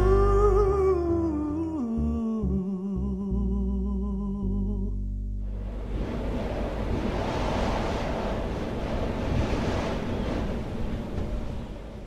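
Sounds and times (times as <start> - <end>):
steady rushing noise: 5.5 - 12.0.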